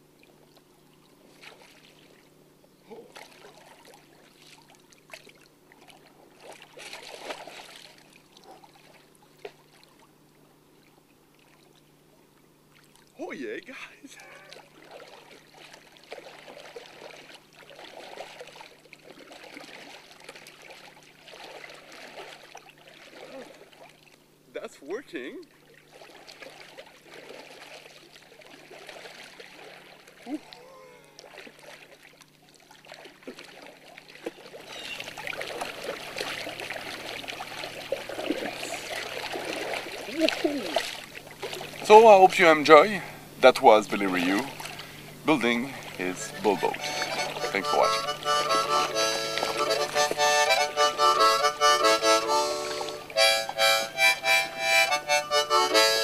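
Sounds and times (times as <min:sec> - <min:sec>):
paddle splashing water: 0:00.0 - 0:02.3, 0:02.9 - 0:11.9, 0:14.1 - 0:24.3, 0:25.2 - 0:42.9, 0:43.6 - 0:56.0.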